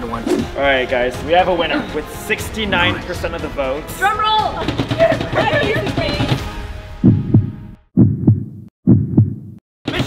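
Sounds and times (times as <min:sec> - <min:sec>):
heartbeat thumps: 0:04.6 - 0:10.0.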